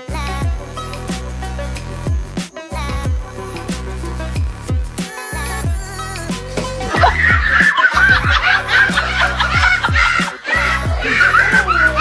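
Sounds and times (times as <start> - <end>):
music with sliding bass notes: 0.0 - 12.0
person laughing: 6.8 - 12.0.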